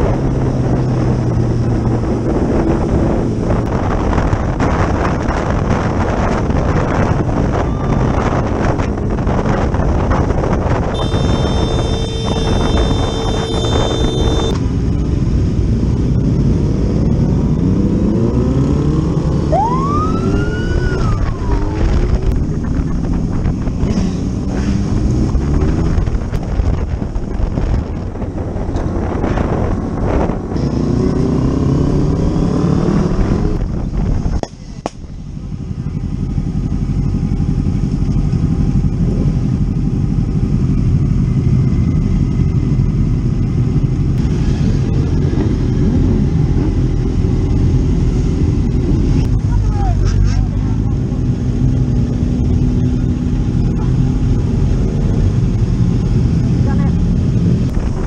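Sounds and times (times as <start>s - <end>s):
wind and road noise: 0.0s - 58.0s
motorcycle engine revving: 8.2s - 26.8s, 28.8s - 33.7s.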